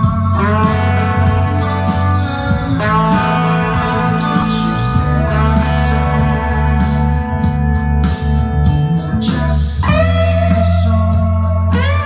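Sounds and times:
electric guitar lead line: 0.0s - 12.0s.

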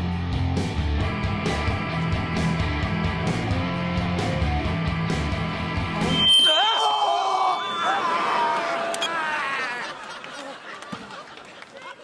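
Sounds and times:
loud rock music: 0.0s - 6.1s
men screaming in fright: 6.5s - 10.0s.

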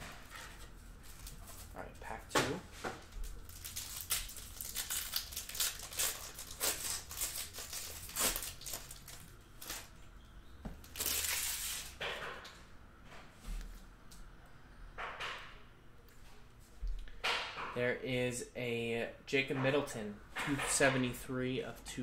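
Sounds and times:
plastic wrapper tearing and crinkling: 3.0s - 9.9s, 10.8s - 12.0s.

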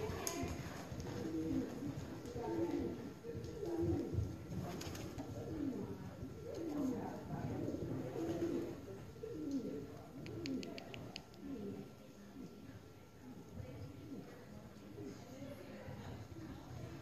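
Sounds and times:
birds cooing: 0.0s - 11.9s.

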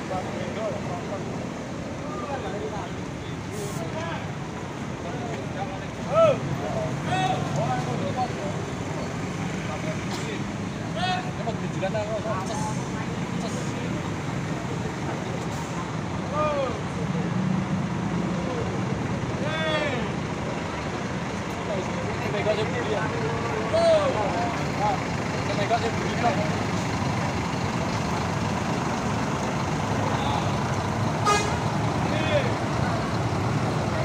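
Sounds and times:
bus diesel engine running: 0.0s - 34.0s
people shouting calls: 16.3s - 16.8s, 19.4s - 20.2s.

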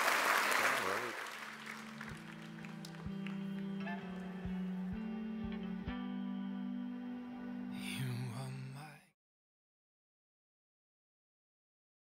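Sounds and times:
guitar music: 1.4s - 8.5s.

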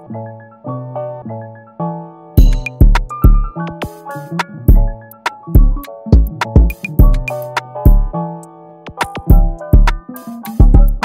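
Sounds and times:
looping keyboard melody: 0.0s - 11.0s
drums: 2.4s - 4.0s, 5.6s - 8.0s.

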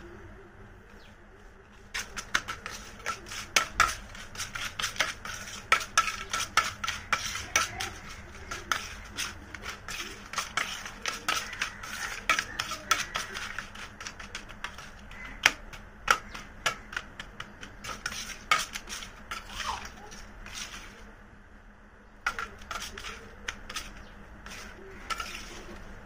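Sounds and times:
spoon scraping a metal plate: 1.9s - 21.0s, 22.3s - 26.0s.

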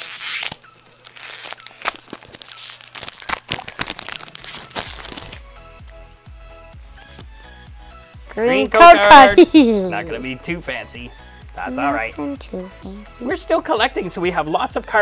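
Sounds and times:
foil wrapper tearing and crinkling: 0.0s - 5.5s
soft background music: 0.0s - 15.0s.

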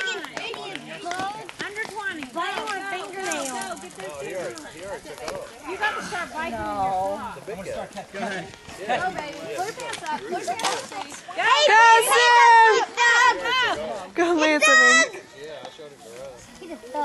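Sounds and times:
spectators chattering and calling out: 0.0s - 17.0s.

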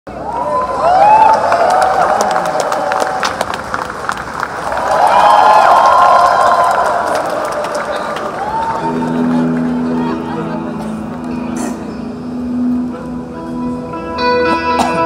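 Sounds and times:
audience cheering and calling out: 0.1s - 3.8s, 4.5s - 10.9s
scattered clapping: 1.2s - 9.8s.

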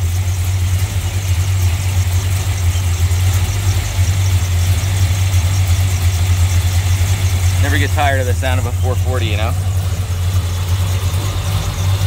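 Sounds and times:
vee eight engine idling: 0.0s - 12.0s.

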